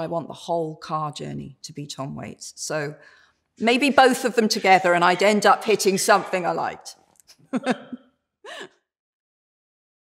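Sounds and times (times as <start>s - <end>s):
woman laughing: 7.3s - 8.8s.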